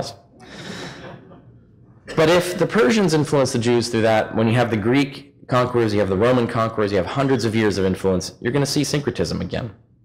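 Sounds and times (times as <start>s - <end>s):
man inhaling: 0.4s - 1.2s.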